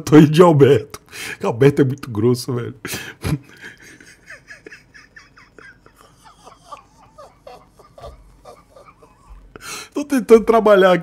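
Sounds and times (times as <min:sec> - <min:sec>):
man's stifled laughter: 0:03.0 - 0:09.6.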